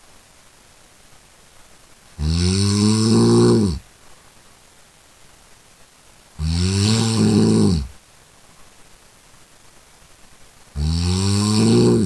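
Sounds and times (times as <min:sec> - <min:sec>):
person snoring: 0:02.2 - 0:03.8, 0:06.4 - 0:07.9, 0:10.8 - 0:12.0.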